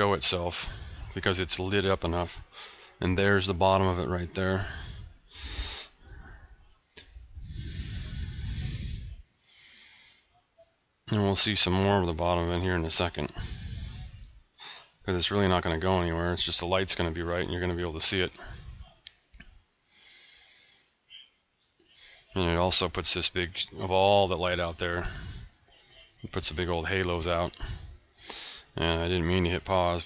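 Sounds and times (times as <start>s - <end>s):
man breathing in: 0.5s - 1.2s, 2.4s - 3.0s, 4.6s - 10.3s, 13.3s - 15.0s, 18.4s - 19.0s, 19.8s - 21.0s, 25.0s - 26.1s, 27.5s - 28.8s
breath blowing on microphone: 4.6s - 9.3s, 13.3s - 14.4s, 25.0s - 25.6s.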